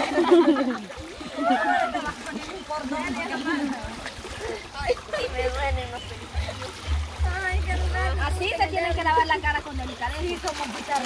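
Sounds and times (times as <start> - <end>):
river water running: 0.0 - 11.0
women chattering: 0.0 - 11.0.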